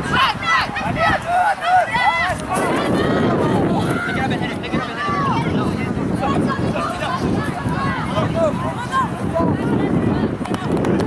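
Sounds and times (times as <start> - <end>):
voices shouting calls: 0.0 - 10.7
wind rumble on microphone: 0.0 - 11.0.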